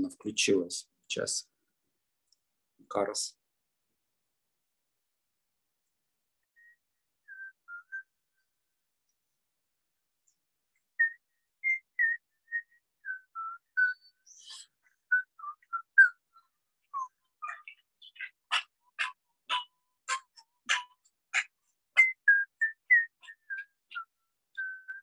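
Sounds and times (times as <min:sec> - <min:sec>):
whistled chant melody: 0:06.6 - 0:08.6, 0:10.8 - 0:18.3, 0:21.9 - 0:25.0.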